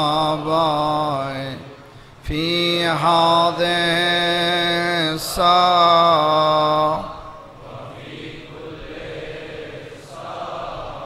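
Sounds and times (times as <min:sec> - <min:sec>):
faint hall ambience: 0:00.0 - 0:11.0.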